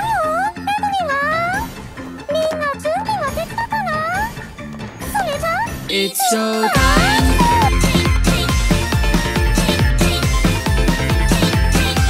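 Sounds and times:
high wordless swooping vocals: 5.6 - 10.6
rhythmic instrumental backing: 6.4 - 12.0.

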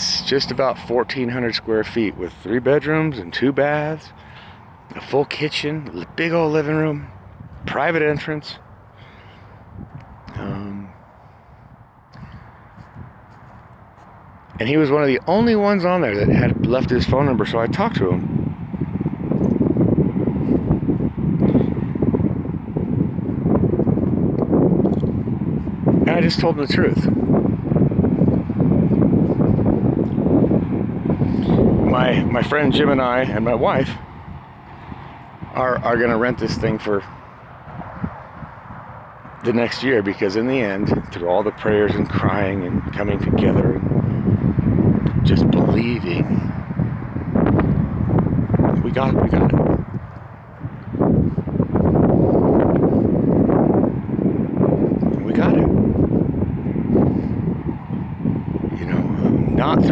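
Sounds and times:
wind on microphone: 0.0 - 59.9.

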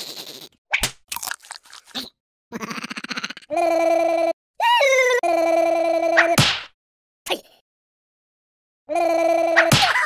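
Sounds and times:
cartoon crunching bites: 1.1 - 2.1.

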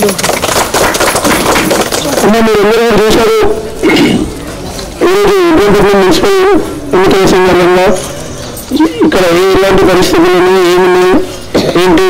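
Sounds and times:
firecrackers popping: 0.0 - 2.3.

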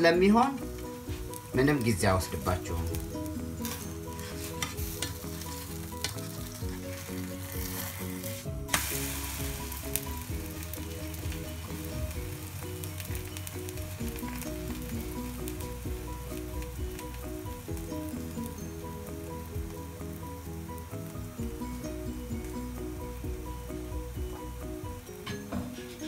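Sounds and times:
batter sizzling in frying pan: 0.0 - 26.0
soft instrumental music: 0.0 - 26.0
spatula scraping pan: 3.6 - 8.5.

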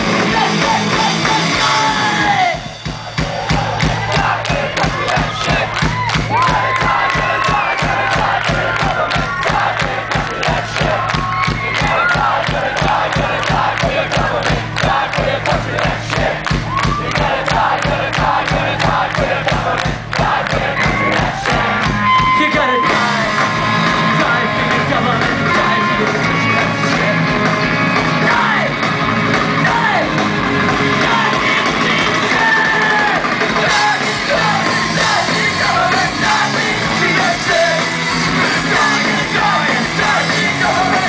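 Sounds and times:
crowd shouting and chanting: 0.0 - 41.0
fast drum hits: 0.0 - 41.0
punk rock band playing live: 0.0 - 41.0
steady bass line: 0.0 - 41.0.

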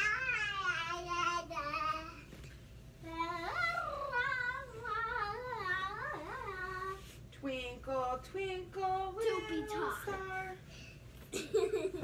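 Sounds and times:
child singing: 0.0 - 2.3, 3.0 - 7.0, 8.8 - 10.6.

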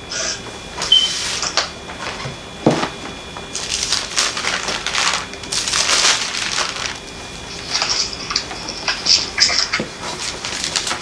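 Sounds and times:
pages rustling: 3.6 - 11.0.

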